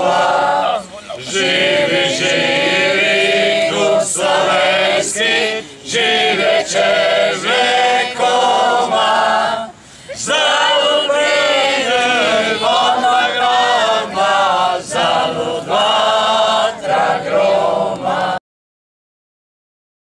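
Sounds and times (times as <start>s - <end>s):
group singing a cappella: 0.0s - 18.4s.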